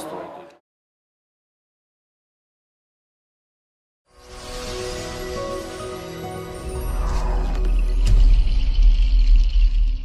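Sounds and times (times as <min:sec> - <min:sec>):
high shimmer: 0:04.1 - 0:09.6.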